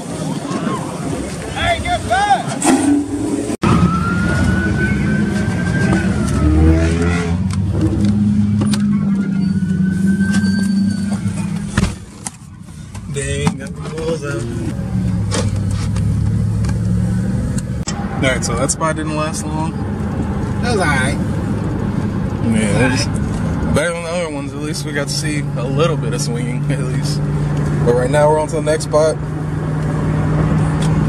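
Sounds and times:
car interior drone at highway speed: 0:01.6 - 0:31.0
car engine revving: 0:02.6 - 0:12.1, 0:13.2 - 0:31.0.

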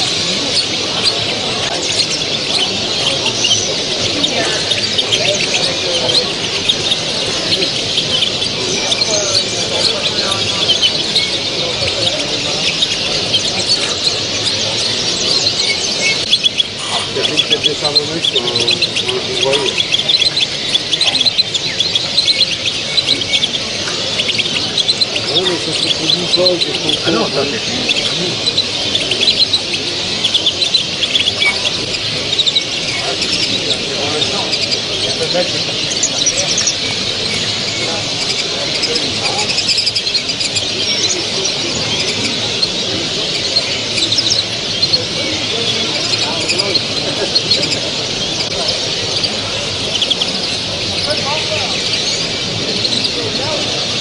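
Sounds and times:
finches chirping: 0:00.0 - 0:54.0
murmur of hall noise: 0:00.0 - 0:54.0.

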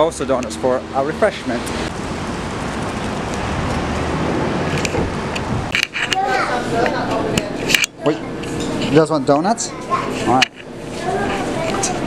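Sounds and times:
road noise with low rumble: 0:00.0 - 0:12.0
wind noise: 0:01.9 - 0:06.0.

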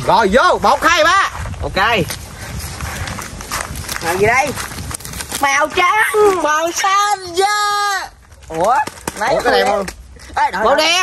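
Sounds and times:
paper slips rustling and crackling: 0:03.7 - 0:05.8.

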